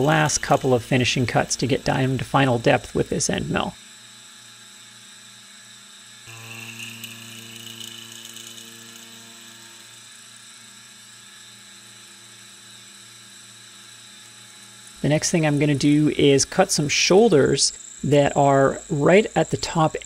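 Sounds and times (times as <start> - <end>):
high whine of cutting: 0.0 - 20.0
milling machine spindle hum: 0.0 - 20.0.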